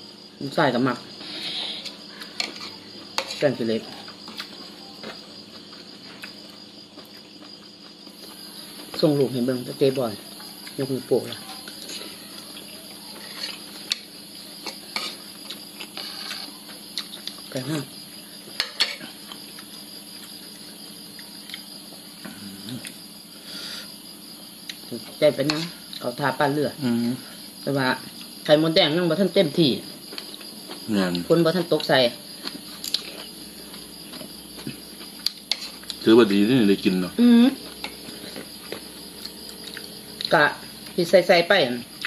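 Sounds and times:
crickets chirring: 0:00.0 - 0:42.0
person speaking: 0:36.0 - 0:38.4.

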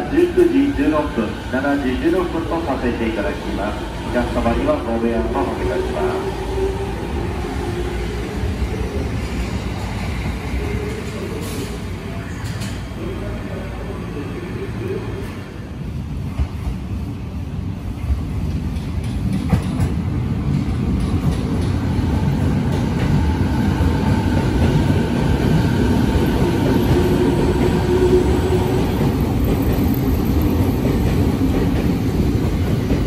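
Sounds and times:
train wheels rumbling on rail: 0:00.0 - 0:13.1, 0:15.1 - 0:33.0.

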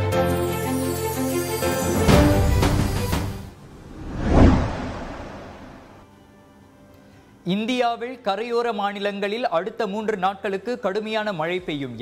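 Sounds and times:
whoosh sound effect: 0:03.8 - 0:06.0.

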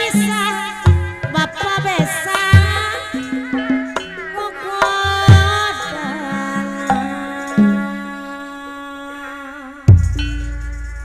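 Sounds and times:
gamelan music with held tones: 0:00.0 - 0:08.6, 0:09.8 - 0:11.0.

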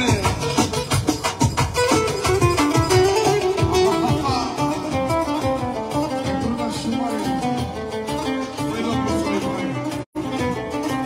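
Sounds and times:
large drum beat: 0:00.0 - 0:06.6
fast plucked-string melody: 0:00.0 - 0:11.0.

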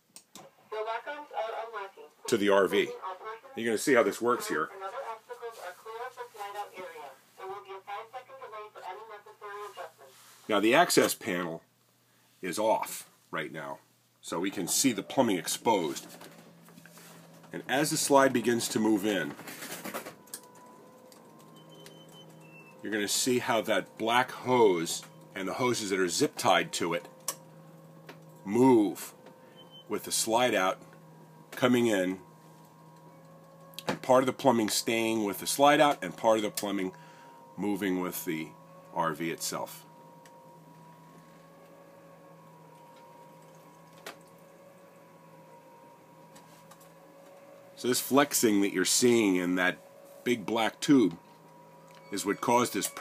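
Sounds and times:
man's voice: 0:01.3 - 0:05.1, 0:22.8 - 0:27.1
slide mechanism humming: 0:14.2 - 0:53.0.

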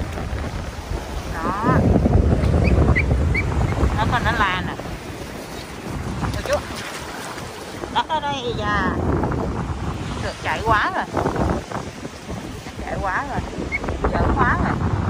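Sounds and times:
ocean surf: 0:00.0 - 0:15.0
wind buffeting microphone: 0:00.0 - 0:15.0.

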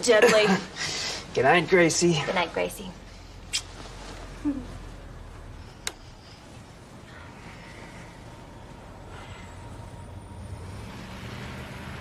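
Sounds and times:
steady low rumble with hiss: 0:00.0 - 0:12.0.

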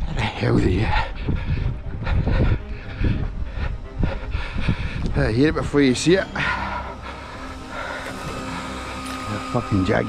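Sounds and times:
wind buffeting microphone: 0:00.0 - 0:06.4
faint distant whine: 0:03.4 - 0:10.0.

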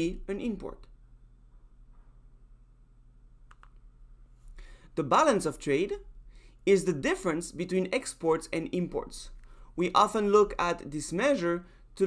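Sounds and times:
person speaking: 0:00.0 - 0:01.0, 0:04.9 - 0:12.0
computer mouse clicks: 0:03.4 - 0:03.9
person breathing in: 0:04.5 - 0:04.9.

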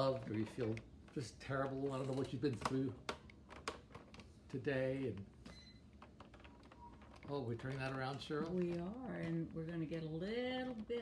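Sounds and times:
man speaking: 0:00.0 - 0:03.0, 0:04.5 - 0:05.3.

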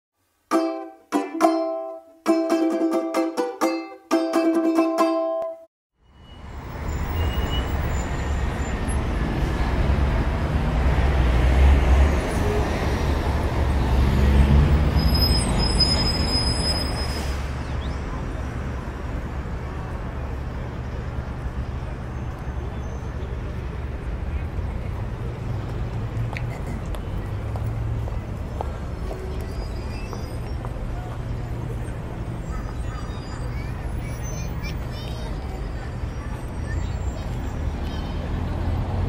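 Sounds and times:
plucked string chords: 0:00.5 - 0:05.7
street traffic rumble: 0:06.0 - 0:39.0.

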